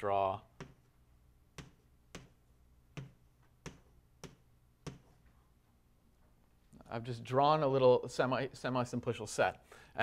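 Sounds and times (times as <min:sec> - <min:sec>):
chalk tapping on blackboard: 0:00.6 - 0:00.9, 0:01.5 - 0:05.2.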